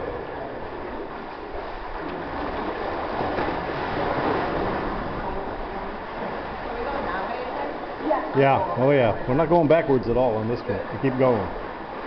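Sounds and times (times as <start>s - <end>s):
sea surf rushing: 0.0s - 12.0s.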